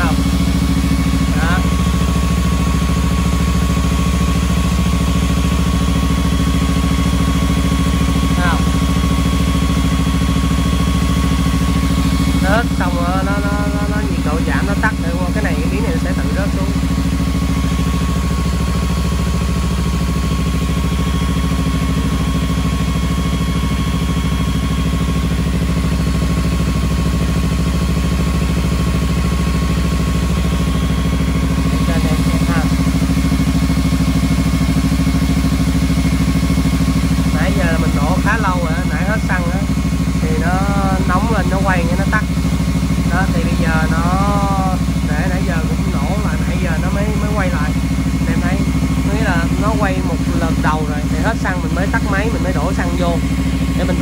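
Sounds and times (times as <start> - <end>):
motorcycle engine idling: 0.0 - 54.0.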